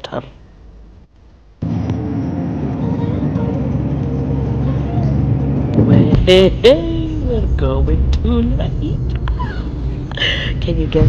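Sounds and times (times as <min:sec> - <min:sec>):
car engine and road drone: 0:00.0 - 0:11.0.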